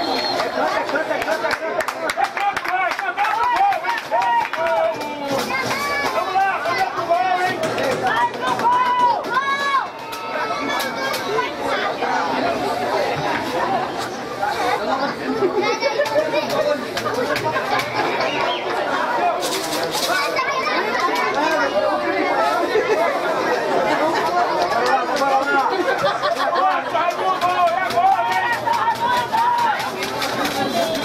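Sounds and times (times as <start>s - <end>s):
crowd voices talking and shouting: 0.0s - 31.0s.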